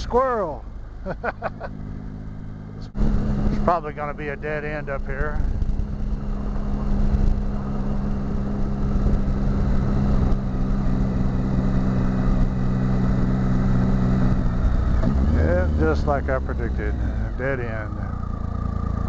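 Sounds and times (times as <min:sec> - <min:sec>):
motorcycle engine cruising: 0:00.0 - 0:19.0
road noise: 0:00.0 - 0:19.0
wind noise: 0:04.9 - 0:15.4.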